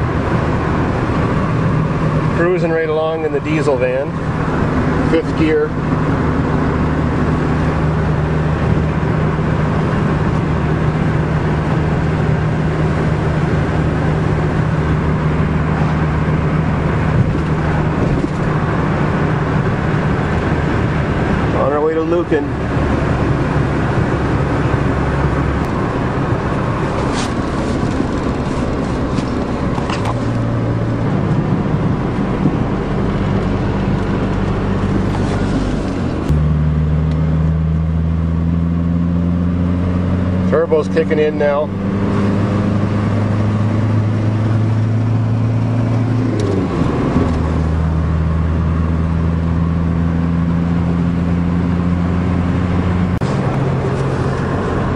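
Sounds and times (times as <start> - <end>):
diesel engine drone: 0.0 - 54.9
road noise: 0.0 - 54.9.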